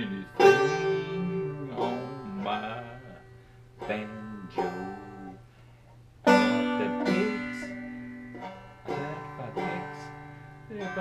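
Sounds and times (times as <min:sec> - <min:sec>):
banjo chords strummed: 0:00.0 - 0:05.5, 0:06.2 - 0:11.0.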